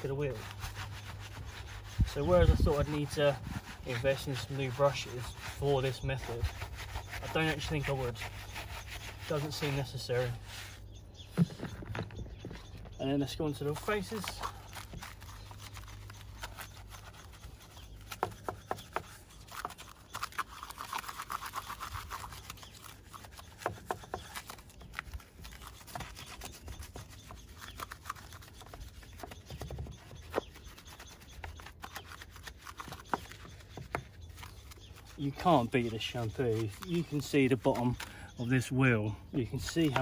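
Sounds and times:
brush scrubbing a wheel: 0:00.0 - 0:11.8, 0:12.9 - 0:40.0.

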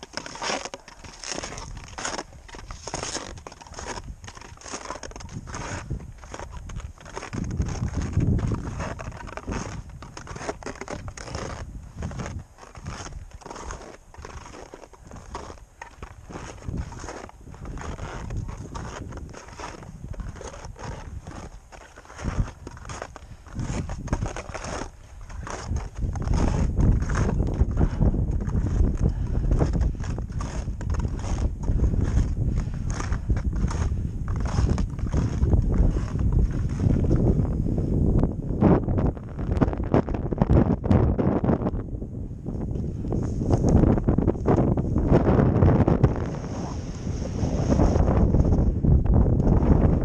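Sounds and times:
footsteps on packed snow: 0:00.0 - 0:37.5, 0:42.9 - 0:49.0
wind buffeting microphone: 0:01.2 - 0:50.0.

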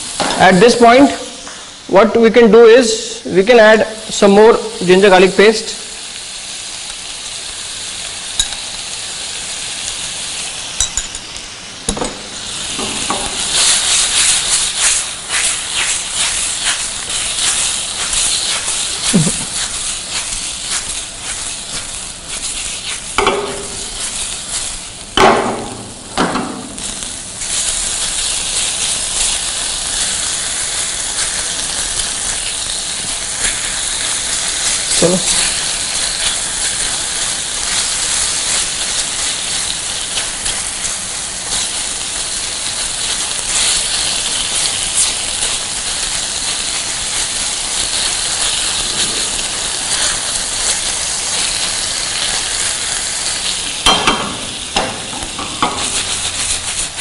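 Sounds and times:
chicken sizzling in frying pan: 0:00.0 - 0:57.0
spatula stirring strokes: 0:12.3 - 0:25.2, 0:26.8 - 0:57.0.

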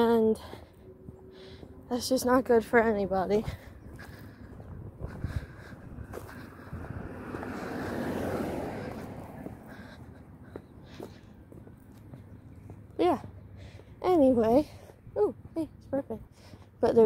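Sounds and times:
faint footsteps: 0:00.0 - 0:16.8
rush of passing noise: 0:04.8 - 0:10.4.

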